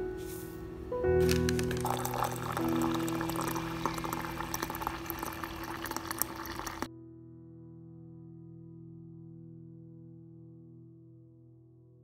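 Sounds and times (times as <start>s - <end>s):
background music: 0.0s - 6.9s
water pouring into a mug: 1.3s - 6.9s.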